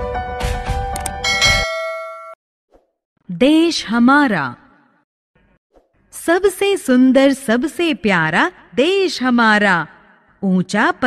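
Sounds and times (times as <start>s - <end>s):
bright bell chime: 1.2s - 2.4s.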